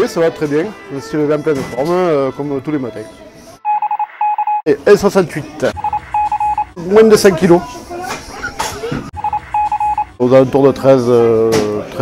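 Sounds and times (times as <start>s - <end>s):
electronic beeps: 3.7s - 4.6s, 5.8s - 6.8s, 9.2s - 10.1s.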